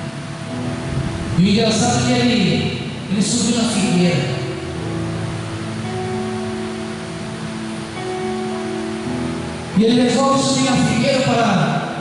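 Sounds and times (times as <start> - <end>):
constant hiss: 0.0 - 12.0
soft held chords music: 0.0 - 12.0.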